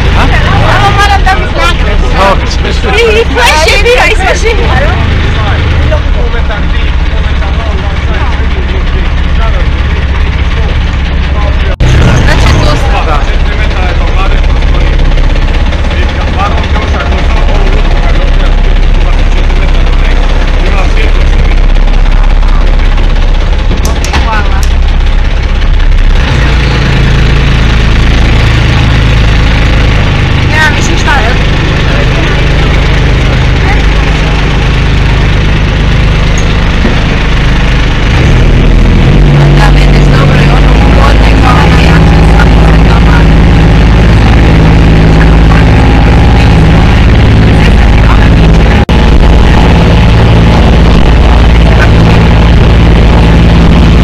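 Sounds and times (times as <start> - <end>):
small boat engine running: 0.0 - 54.0.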